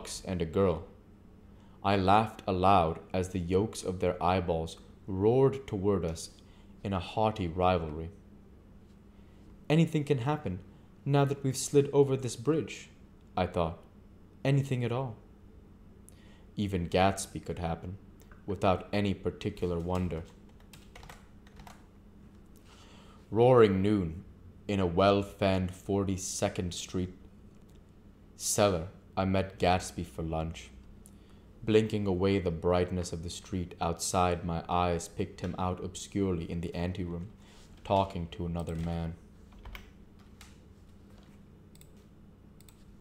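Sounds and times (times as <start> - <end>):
faint low hum: 0.0 - 43.0.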